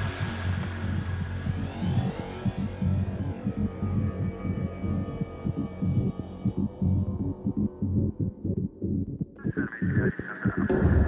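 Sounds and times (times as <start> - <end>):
pulsing bass pattern: 0.0 - 11.0
sustained synth pads: 0.0 - 11.0.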